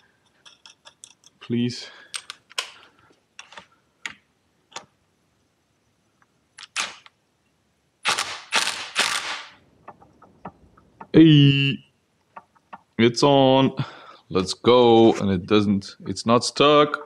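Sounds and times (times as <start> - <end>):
impact driver bursts: 8.1 - 9.6.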